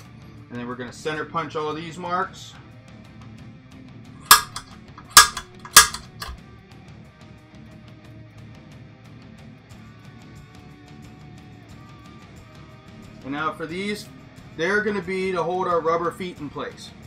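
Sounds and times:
background music with guitar: 0.0 - 17.0
center punch metallic snaps: 4.3 - 6.4.

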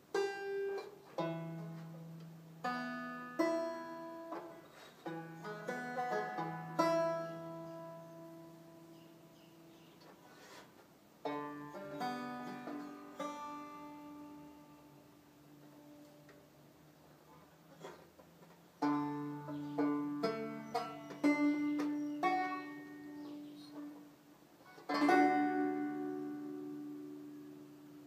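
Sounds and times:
banjo picking: 0.0 - 28.0.

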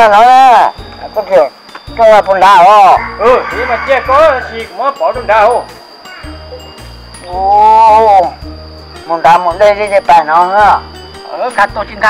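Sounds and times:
background music with low bass: 0.0 - 12.0.

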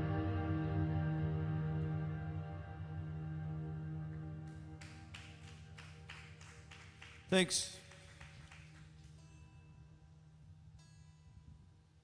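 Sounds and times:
slow sparse clapping: 4.1 - 9.6.

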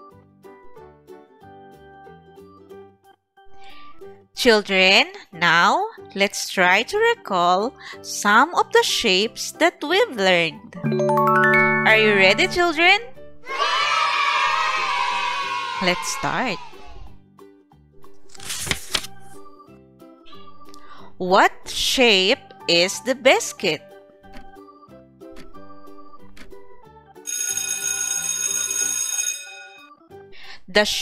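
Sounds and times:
light children's music: 0.0 - 27.4, 29.8 - 31.0
cartoon alarm clock bell ringing: 10.8 - 13.1, 27.3 - 30.0
children shouting and cheering: 13.4 - 17.0.

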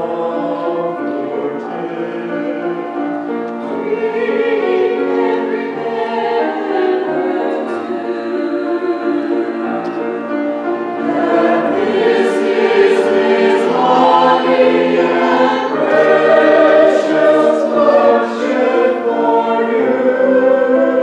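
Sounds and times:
choir singing: 0.0 - 21.0.

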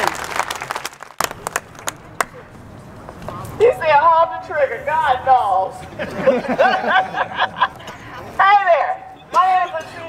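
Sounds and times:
scattered hand claps: 0.0 - 2.4.

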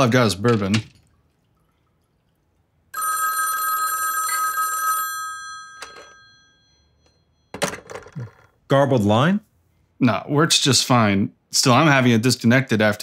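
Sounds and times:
telephone bell ringing: 3.0 - 7.9.

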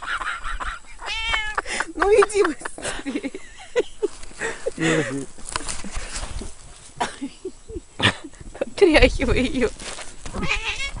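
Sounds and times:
cat yowling: 1.1 - 1.6, 10.4 - 11.0.

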